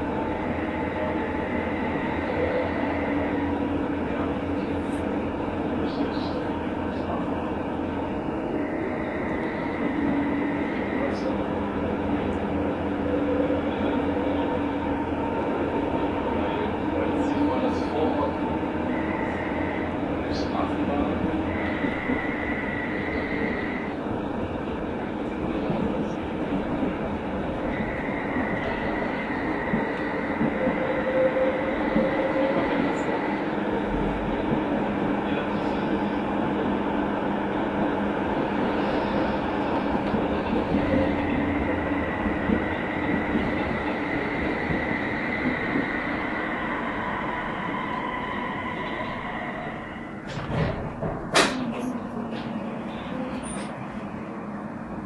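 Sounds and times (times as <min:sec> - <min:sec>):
tram wheels rumbling on rail: 0:00.0 - 0:55.0.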